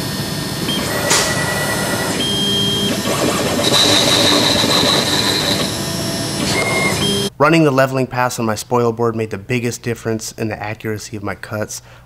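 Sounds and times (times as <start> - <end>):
high motor whines: 0.0 - 7.3
router spindle running: 0.0 - 7.3.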